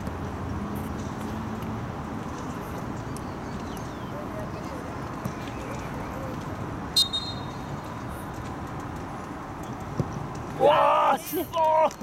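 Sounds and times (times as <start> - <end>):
referee's whistle: 6.9 - 7.6
people shouting: 10.6 - 12.0.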